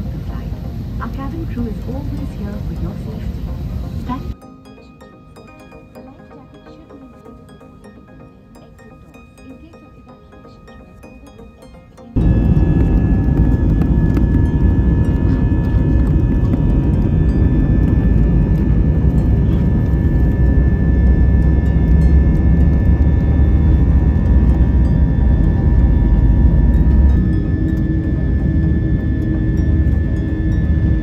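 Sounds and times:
jet engines roaring in cabin: 0.0s - 4.4s, 12.2s - 31.0s.

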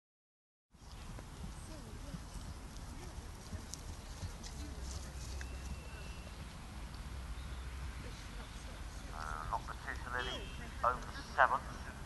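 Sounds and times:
horse hooves on grass: 0.8s - 11.3s.

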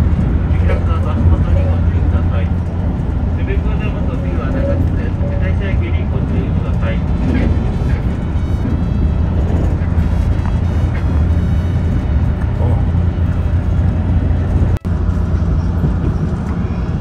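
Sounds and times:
train rumbling inside carriage: 0.0s - 17.0s.

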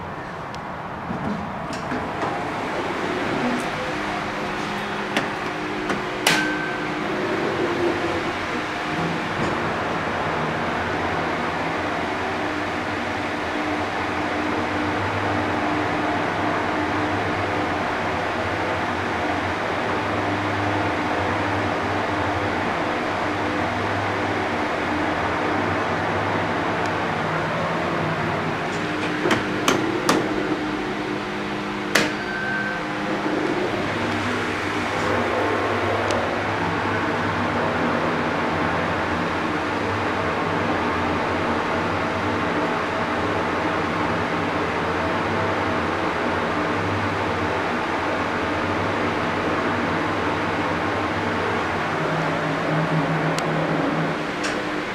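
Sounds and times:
elevator mechanical hum: 0.0s - 54.9s
short beep: 32.1s - 32.9s.

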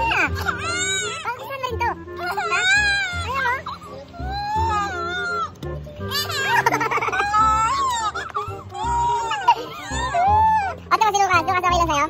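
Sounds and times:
girl crying hard: 0.0s - 1.4s, 2.2s - 10.9s.

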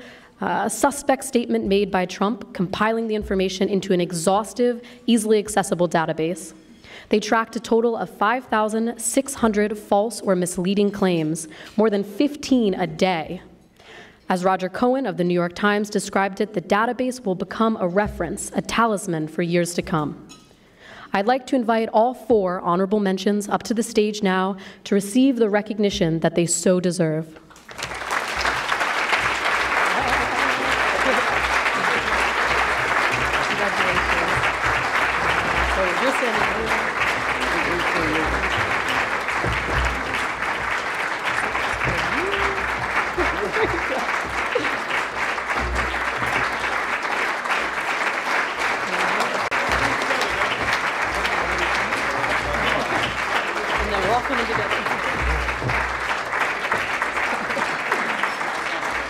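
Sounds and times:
audience applauding: 27.5s - 59.0s.

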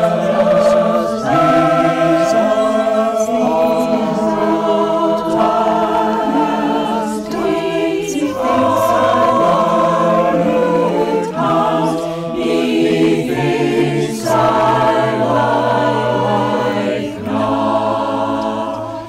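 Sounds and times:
choir singing sustained chords: 0.0s - 19.0s.

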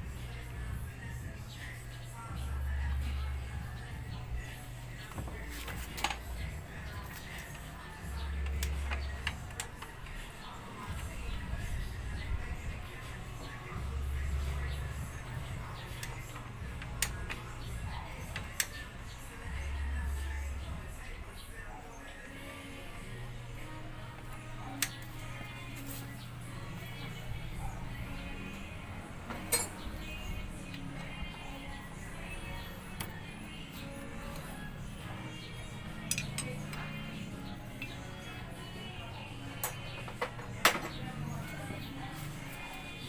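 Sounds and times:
faint background music: 0.0s - 43.0s
socket tool metal clinks: 29.5s - 29.8s, 36.1s - 36.6s.

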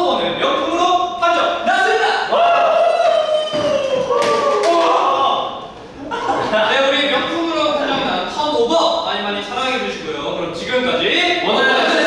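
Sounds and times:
young men cheering: 1.7s - 5.6s
hand claps: 3.6s - 4.9s.

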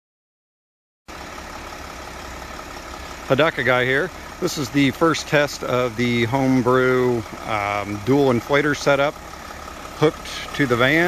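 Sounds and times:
van engine idling: 1.1s - 11.0s.

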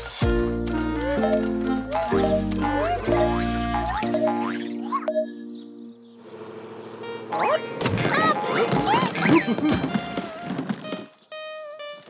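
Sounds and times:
held music notes: 0.0s - 8.7s.

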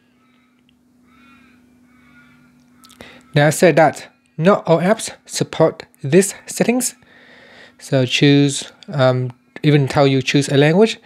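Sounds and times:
faint bird calls: 0.0s - 3.6s
steady low hum: 0.0s - 11.0s.

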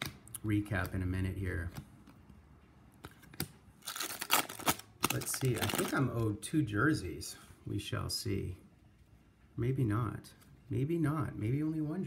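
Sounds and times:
trading cards rustling: 3.0s - 6.3s.

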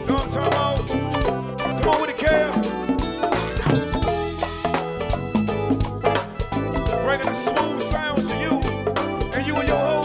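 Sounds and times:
band playing a song: 0.0s - 10.0s
steady drum beat: 0.0s - 10.0s.

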